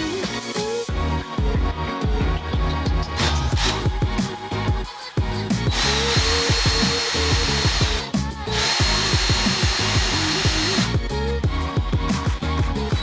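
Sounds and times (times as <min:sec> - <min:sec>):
background music: 0:00.0 - 0:13.0
cordless drill boring into wood: 0:05.7 - 0:11.0.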